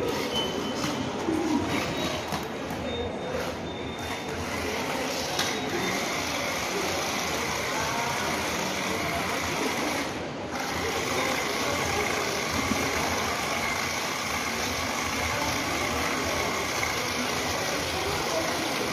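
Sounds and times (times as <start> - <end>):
toy car motors whirring: 4.1 - 18.9.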